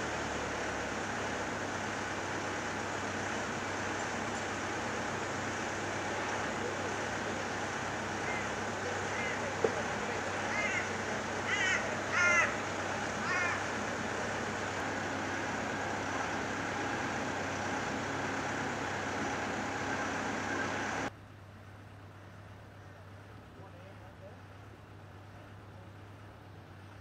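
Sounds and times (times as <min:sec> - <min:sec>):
construction site hum: 0:00.0 - 0:27.0
bird calling: 0:08.0 - 0:15.1.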